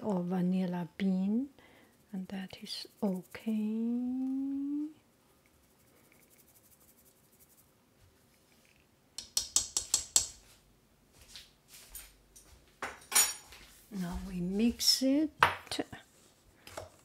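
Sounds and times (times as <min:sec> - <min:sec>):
utensil clicking against mixing bowl: 0:09.2 - 0:10.3.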